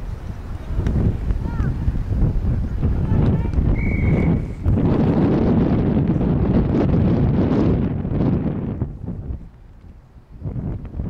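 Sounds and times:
wind buffeting microphone: 0.0s - 11.0s
high whistle blast: 3.7s - 4.6s.

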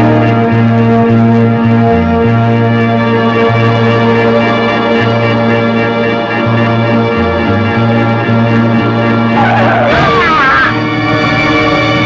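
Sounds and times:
film music: 0.0s - 12.0s
car tyres screeching: 9.2s - 12.0s.

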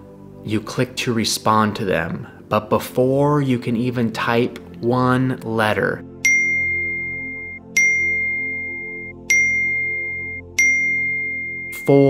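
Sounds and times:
background music: 0.0s - 12.0s
phone notification ding: 6.2s - 12.0s.

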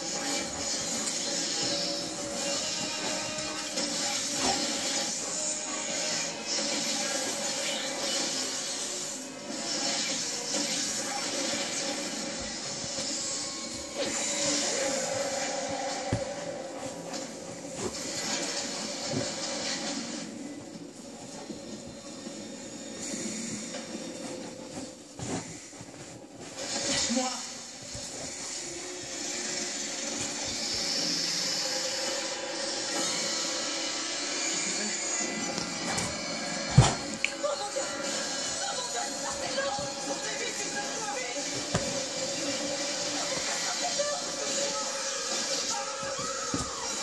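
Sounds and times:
television music: 0.0s - 47.0s
television voices: 0.0s - 47.0s.

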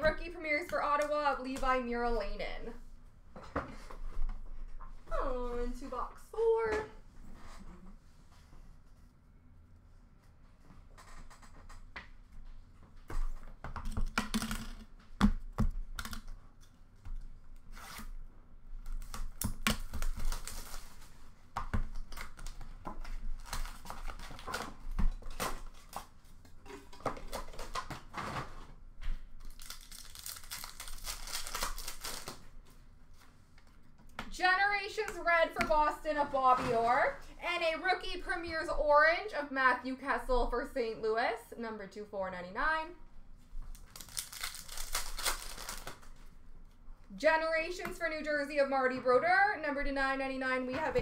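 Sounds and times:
wrappers tearing and crinkling: 18.9s - 21.2s, 22.0s - 26.2s, 29.4s - 32.6s, 43.7s - 46.2s.

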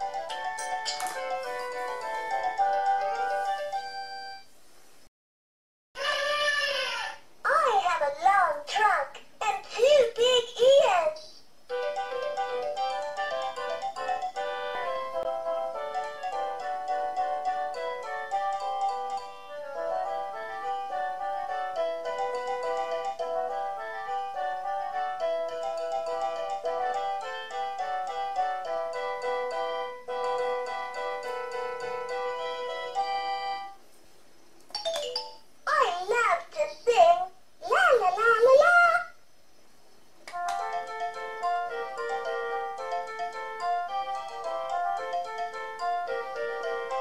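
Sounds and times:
electronic chime melody from toy: 0.5s - 4.5s
chiming electronic melody: 40.6s - 47.0s.

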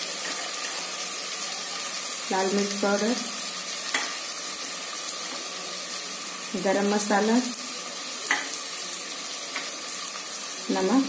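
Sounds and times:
food sizzling in hot fat: 0.0s - 11.0s.

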